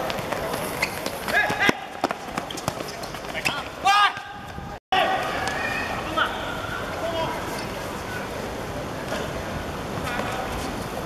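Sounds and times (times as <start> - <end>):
players running on hard court: 0.0 - 4.8.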